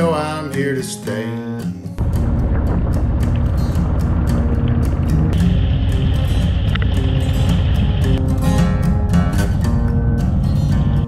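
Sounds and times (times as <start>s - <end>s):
background music: 0.0s - 11.0s
motorcycle engine running: 2.0s - 11.0s.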